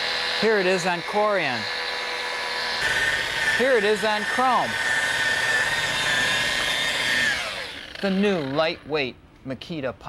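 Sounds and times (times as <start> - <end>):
polisher motor whining: 0.0 - 8.6.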